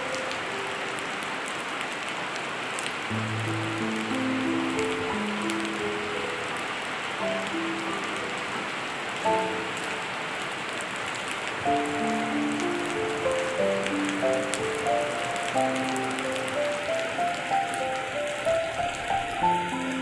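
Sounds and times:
slow melody of held notes: 0.0 - 1.4, 3.1 - 10.6, 11.6 - 20.0
rain on pavement and roofs: 0.0 - 20.0.

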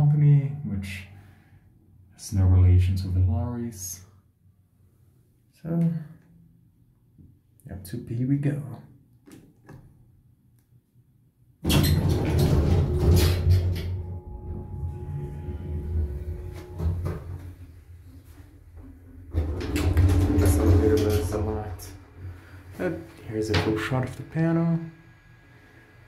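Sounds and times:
elevator clattering: 11.6 - 17.4, 19.1 - 22.4
elevator low rumble: 11.8 - 26.0.

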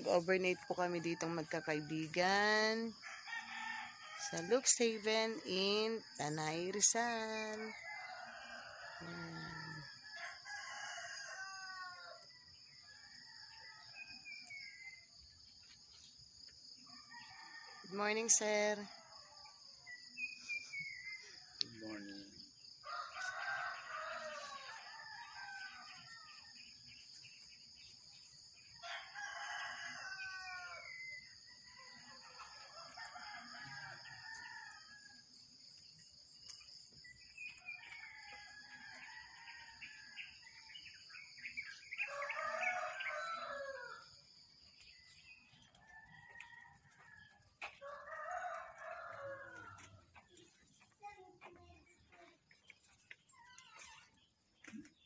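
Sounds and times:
roosters crowing: 3.0 - 4.8, 7.7 - 12.3, 22.8 - 26.4, 28.8 - 31.1, 31.7 - 35.2, 41.9 - 44.2, 45.7 - 50.1.

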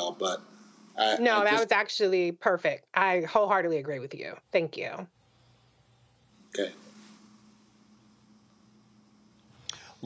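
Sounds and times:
person speaking: 0.0 - 1.8
faint steady hum: 0.0 - 10.0.

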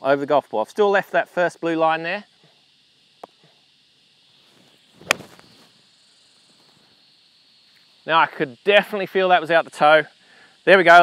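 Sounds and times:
golf club hitting ball: 5.0 - 5.4
golf swing swish: 5.0 - 5.6.

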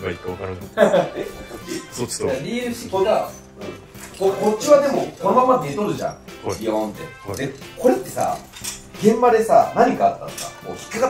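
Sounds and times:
light background music: 0.0 - 11.0
men talking: 0.0 - 11.0
metal buckles clinking: 2.9 - 9.5, 10.2 - 11.0.

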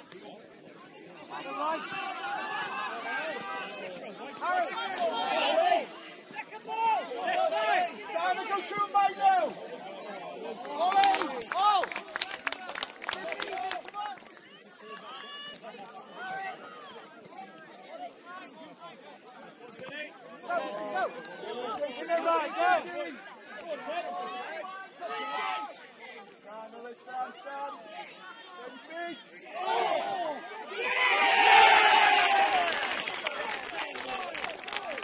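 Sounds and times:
people shouting and calling: 1.3 - 9.6, 27.5 - 35.0.

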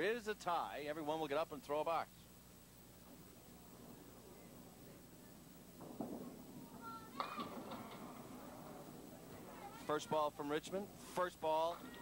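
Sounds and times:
faint spectator chatter: 3.0 - 12.0.

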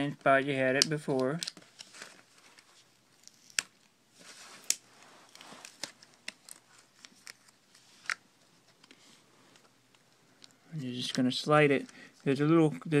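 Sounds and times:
soft rustling: 1.6 - 12.5.

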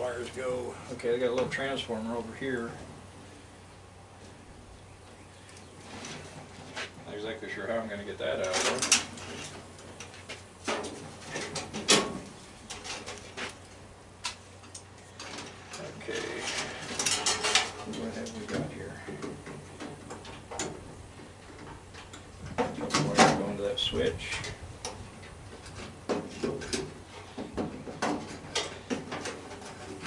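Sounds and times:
tools clicking and knocking on metal: 16.8 - 23.4.

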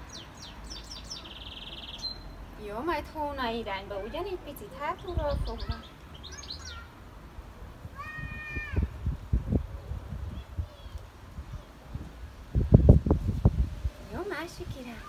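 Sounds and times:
wind rumbling on microphone: 4.8 - 6.8, 7.4 - 15.0.

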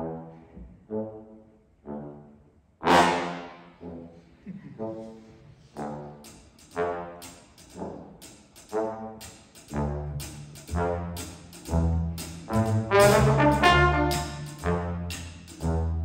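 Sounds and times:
trombones playing short phrases: 0.9 - 16.0.

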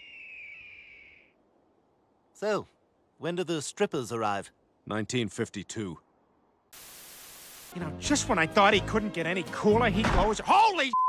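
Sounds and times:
high whistling tone: 0.0 - 1.4
faint hiss: 6.3 - 7.8.

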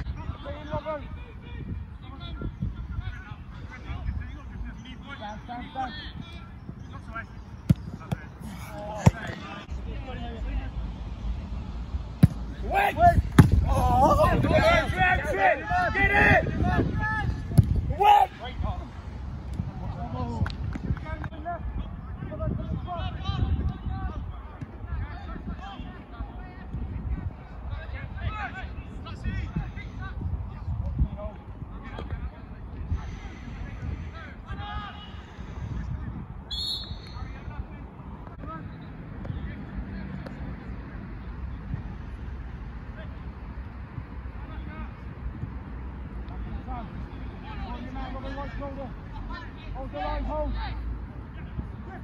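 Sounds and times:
football kicked thud: 7.6 - 8.3, 8.9 - 9.5, 12.2 - 12.5, 13.3 - 13.7
referee's whistle blast: 36.5 - 37.2.

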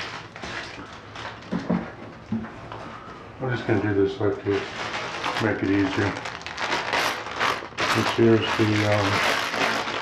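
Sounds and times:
bubble wrap crinkling: 0.0 - 1.6, 4.2 - 10.0.

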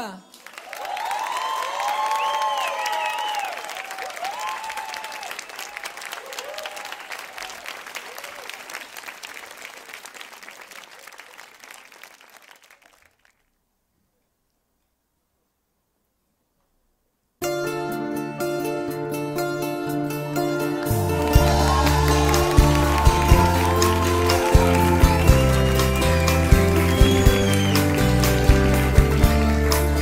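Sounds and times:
audience applauding: 0.0 - 13.5, 20.8 - 30.0
whoops and shouts: 0.8 - 5.3, 21.2 - 26.2.

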